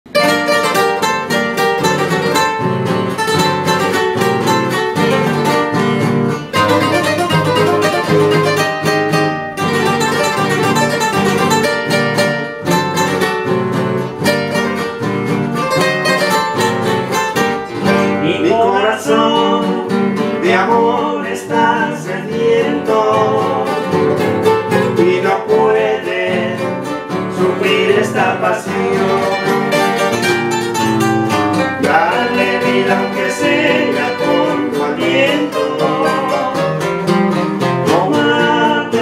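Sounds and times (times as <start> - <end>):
acoustic guitars playing: 0.1 - 39.0.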